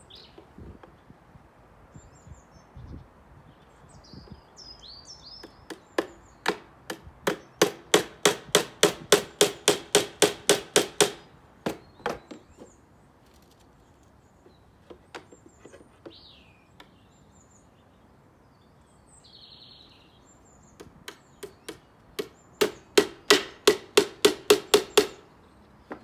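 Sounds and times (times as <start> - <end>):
hammer striking wooden panels: 5.7 - 12.7, 20.8 - 25.2.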